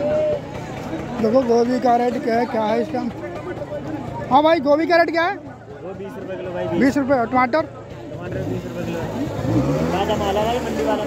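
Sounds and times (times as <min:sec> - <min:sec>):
market chatter: 0:00.0 - 0:11.0.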